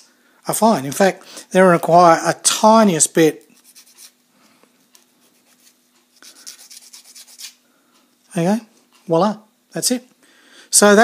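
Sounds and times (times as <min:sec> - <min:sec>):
nail file scratching plastic: 0:03.6 - 0:04.2, 0:05.3 - 0:07.6.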